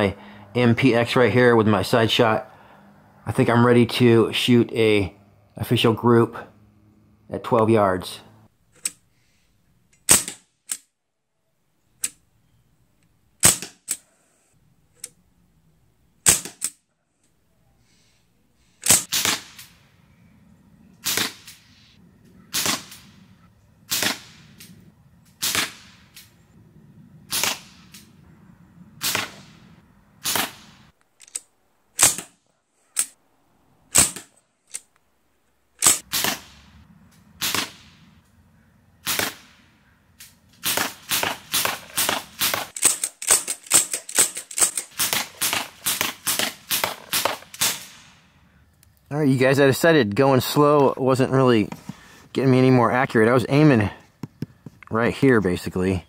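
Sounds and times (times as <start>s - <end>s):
air rifle shots: 10.0s - 10.8s, 13.4s - 14.0s, 16.2s - 16.8s, 18.8s - 19.8s, 21.0s - 21.8s, 22.5s - 23.3s, 23.9s - 26.3s, 27.3s - 28.2s, 29.0s - 31.4s, 32.0s - 32.4s, 33.9s - 34.4s, 35.8s - 36.7s, 37.4s - 38.1s, 39.0s - 48.3s.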